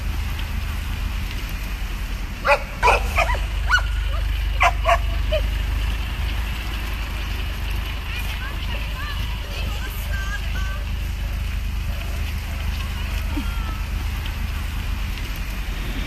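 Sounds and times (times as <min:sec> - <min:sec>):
steady low rumble: 0:00.0 - 0:16.0
dogs barking: 0:02.4 - 0:05.6.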